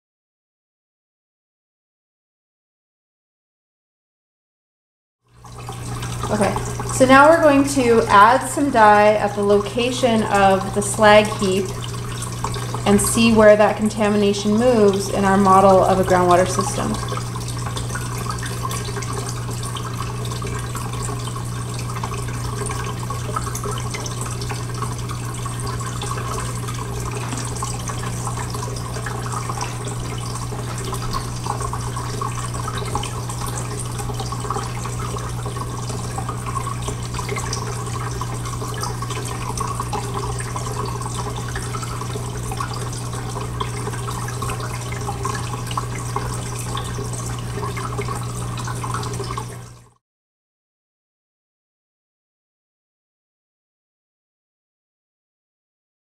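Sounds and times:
water trickling and dripping: 0:05.2 - 0:50.0
steady low hum: 0:05.6 - 0:48.6.

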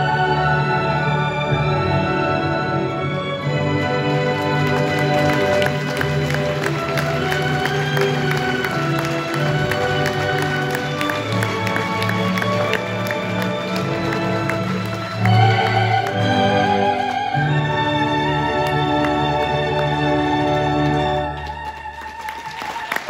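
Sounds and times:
orchestral backing track: 0:00.0 - 0:22.0
audience clapping: 0:03.4 - 0:23.0
soprano singing with vibrato: 0:15.2 - 0:18.6.

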